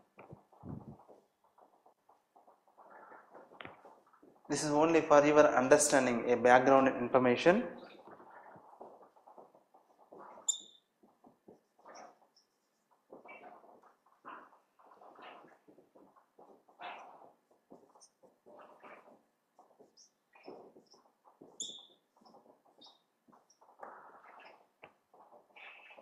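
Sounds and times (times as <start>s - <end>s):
marker scratching on whiteboard: 0.0s - 5.0s, 7.8s - 26.0s
marker tip squeak: 10.2s - 10.9s, 19.8s - 23.6s.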